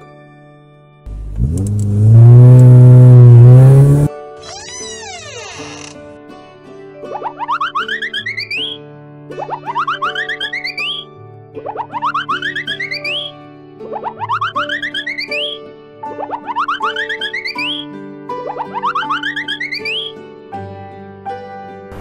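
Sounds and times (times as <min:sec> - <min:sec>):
light children's music: 0:00.0 - 0:01.4, 0:04.1 - 0:22.0
cartoon boing effects: 0:07.1 - 0:08.8, 0:09.4 - 0:11.0, 0:11.6 - 0:15.6, 0:16.2 - 0:17.8, 0:18.4 - 0:20.1.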